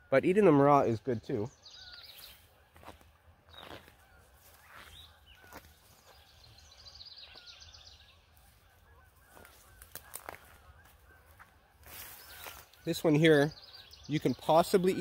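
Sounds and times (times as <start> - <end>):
bird chirping: 0.0 - 15.0
bird trill: 0.0 - 15.0.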